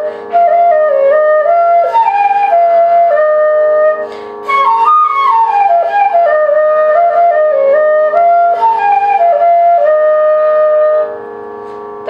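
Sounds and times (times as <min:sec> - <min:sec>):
bamboo flute note: 0:00.0 - 0:12.0.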